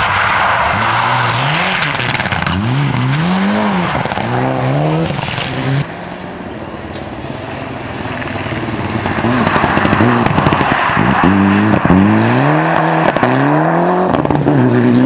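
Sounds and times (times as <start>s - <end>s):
rally car engine revving: 0.2s - 6.1s, 7.3s - 15.0s.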